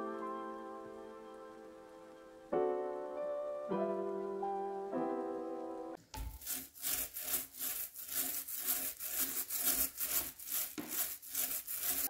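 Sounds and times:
paint roller rubbing on panel: 0:06.2 - 0:12.0.

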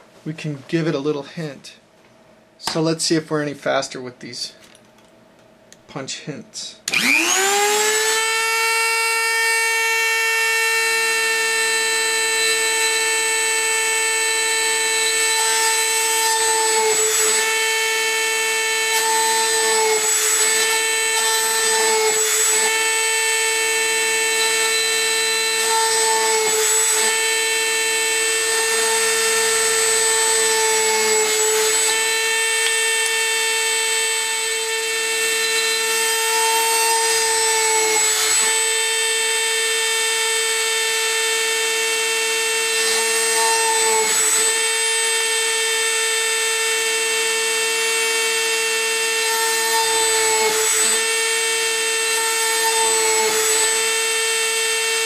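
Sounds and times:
rotary tool drilling whine: 0:06.9 - 0:55.0.

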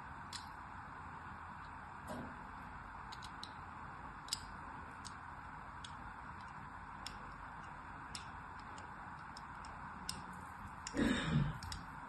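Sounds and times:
blade scoring soap ticks: 0:04.2 - 0:05.2, 0:05.8 - 0:11.0.

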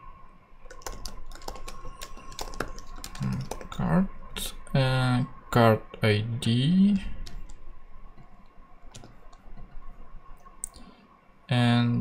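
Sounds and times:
computer keyboard keys clicking: 0:00.6 - 0:03.8, 0:08.9 - 0:09.8.

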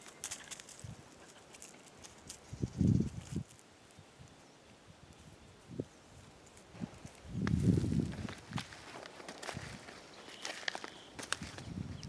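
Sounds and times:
twigs crackling: 0:00.0 - 0:04.4, 0:06.2 - 0:11.7
footsteps crunching over dry brush: 0:06.0 - 0:12.0.

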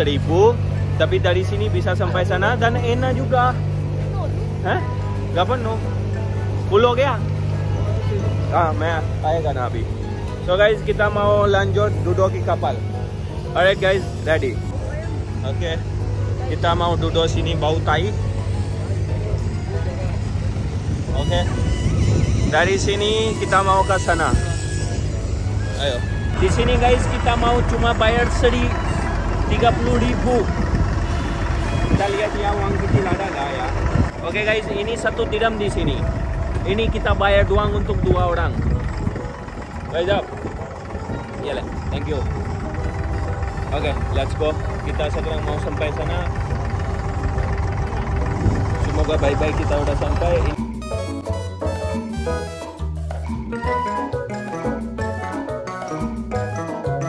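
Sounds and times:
diesel boat engine rumbling: 0:00.0 - 0:57.0
wind buffeting microphone: 0:20.5 - 0:24.6, 0:28.9 - 0:45.0, 0:46.0 - 0:50.6.

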